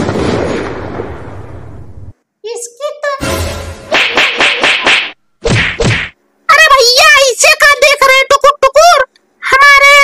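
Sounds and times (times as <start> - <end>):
high-pitched child-like voice: 2.4 - 3.3, 6.5 - 10.0
hard whack hits: 3.9 - 6.2.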